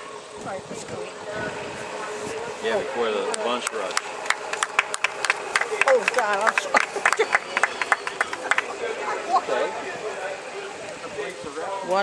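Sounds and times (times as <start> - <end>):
hands clapping: 3.3 - 9.0.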